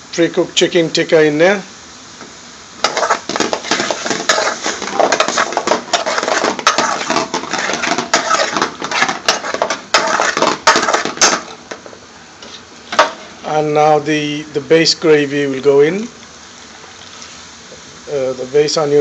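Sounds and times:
metal ladle scraping a metal pan: 2.8s - 11.8s.

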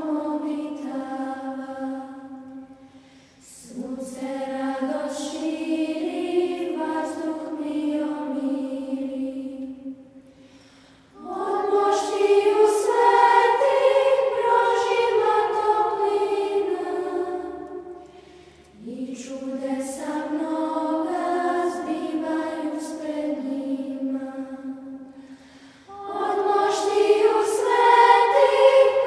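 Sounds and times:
children's choir singing: 0.0s - 10.2s, 11.1s - 25.2s, 25.9s - 29.0s.

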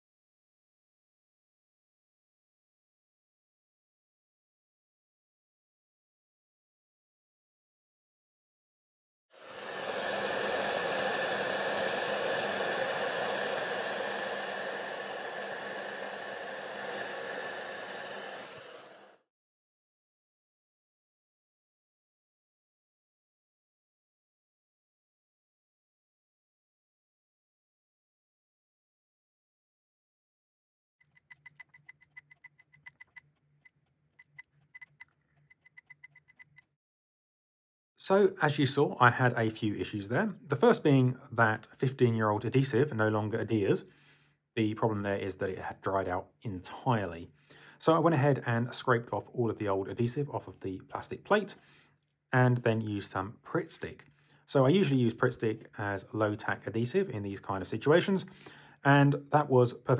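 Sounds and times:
hair dryer blowing: 9.4s - 19.3s.

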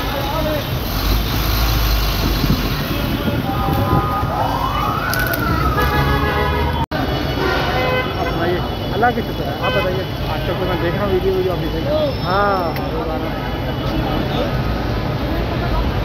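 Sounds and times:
crowd chattering: 0.0s - 1.7s, 2.3s - 16.0s
emergency vehicle siren wail: 3.2s - 6.9s.

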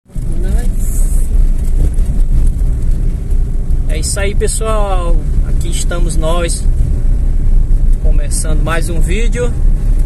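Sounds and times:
vehicle engine and road noise: 0.0s - 10.0s.

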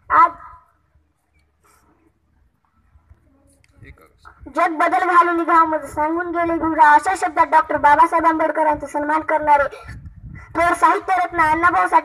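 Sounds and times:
boy calling out into microphone: 0.0s - 0.7s, 3.2s - 12.0s.

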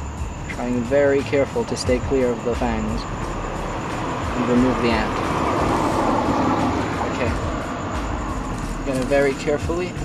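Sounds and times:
passing vehicle: 0.0s - 10.0s.

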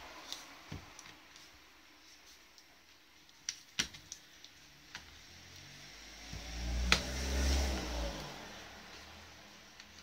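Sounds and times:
vehicle engine passing by: 5.2s - 9.7s.

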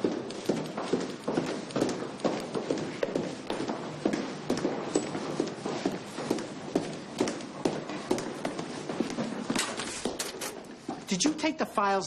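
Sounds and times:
footsteps on hard floor: 0.0s - 11.3s.

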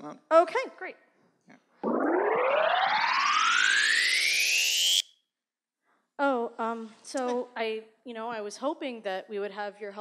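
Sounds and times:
electronic rising sweep: 1.8s - 5.1s.

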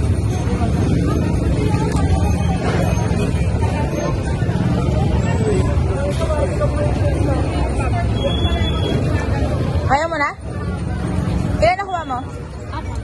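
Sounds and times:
crowd babble: 0.0s - 13.0s
motorcycle engines rumbling: 0.0s - 13.0s.

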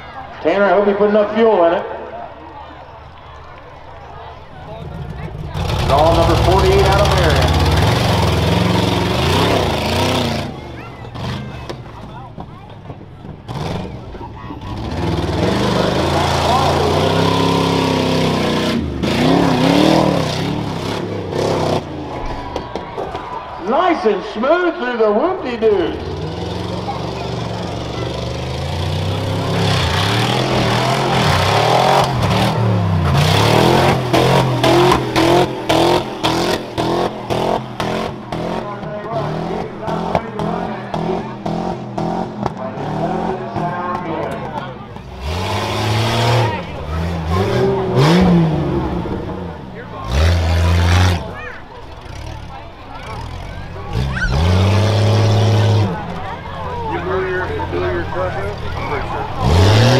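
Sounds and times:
truck engine revving: 2.6s - 59.9s.

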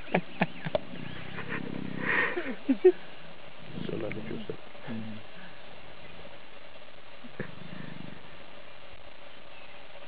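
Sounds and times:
lion growling: 0.7s - 2.6s, 3.6s - 5.6s, 7.4s - 8.4s
lion loud calls: 0.7s - 2.6s
lion snarl: 0.8s - 2.5s, 7.4s - 8.3s.

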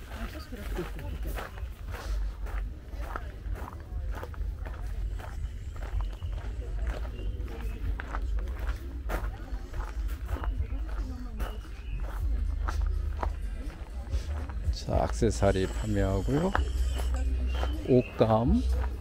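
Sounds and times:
faint voices of people: 0.0s - 19.0s
footsteps walking: 0.0s - 19.0s.

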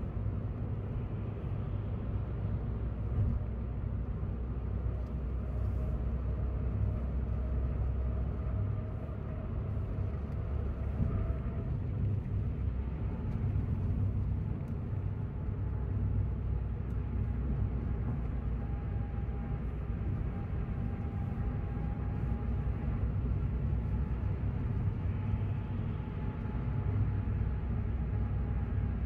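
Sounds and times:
car engine and road rumble: 0.0s - 29.0s.

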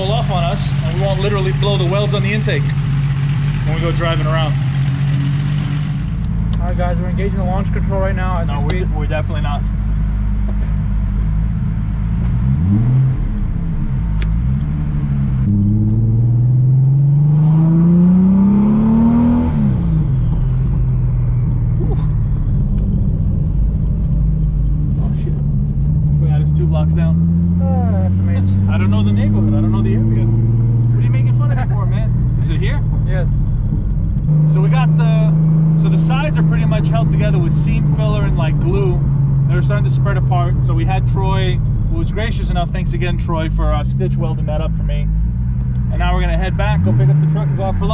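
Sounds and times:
car engine accelerating: 0.0s - 47.9s.

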